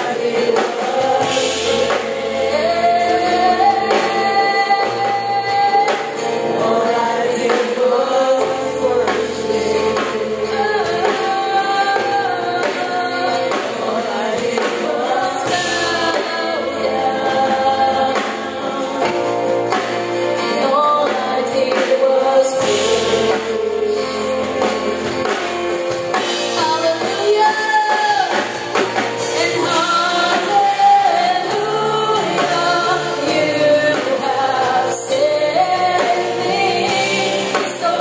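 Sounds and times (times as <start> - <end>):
group singing gospel song: 0.0 - 38.0
instrumental accompaniment with bass: 0.0 - 38.0.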